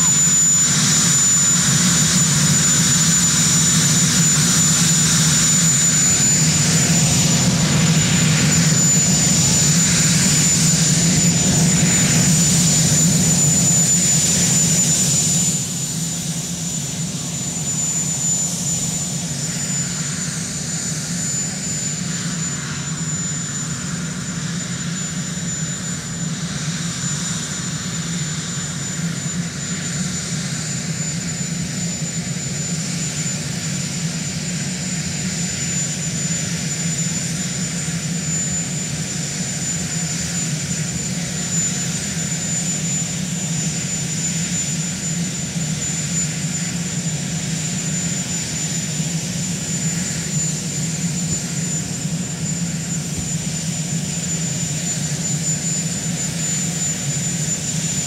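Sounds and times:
helicopter engine running: 0.0s - 58.0s
high-pitched turbine whine: 0.0s - 58.0s.

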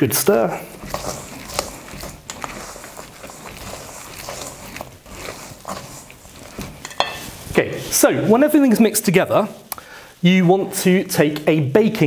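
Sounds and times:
man talking: 0.0s - 0.7s, 7.5s - 12.0s
spoon stirring sticky mixture: 0.0s - 12.0s.

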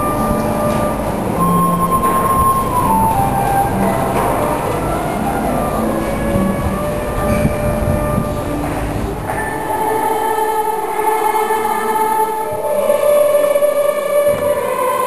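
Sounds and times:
acoustic guitar: 0.0s - 14.9s
choir singing held chords: 0.0s - 15.0s
passers-by noise: 0.0s - 15.0s
wind instrument playing: 0.0s - 15.0s.

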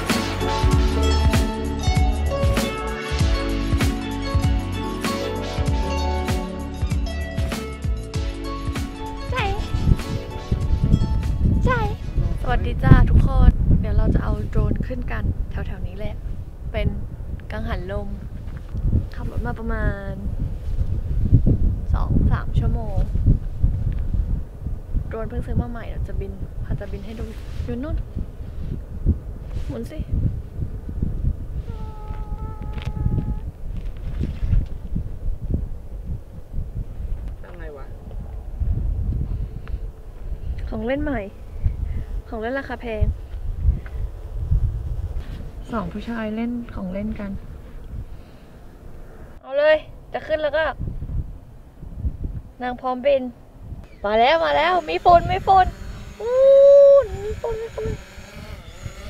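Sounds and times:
wind buffeting microphone: 9.3s - 59.0s
excited voice calls: 31.6s - 33.5s, 54.0s - 59.0s
steady hum: 53.8s - 59.0s.

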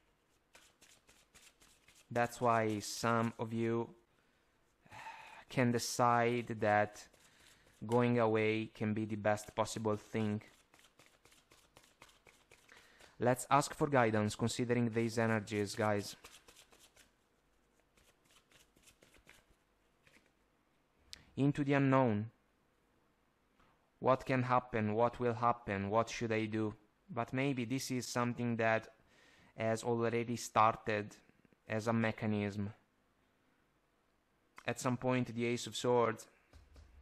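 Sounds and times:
cards shuffling: 0.2s - 3.6s, 9.7s - 13.8s, 15.2s - 17.1s, 17.8s - 20.4s.

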